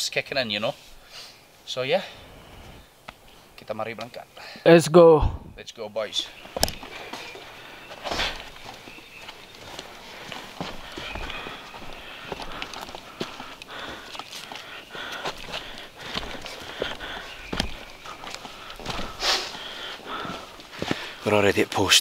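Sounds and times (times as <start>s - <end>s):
footsteps on forest trail: 6.0s - 21.9s.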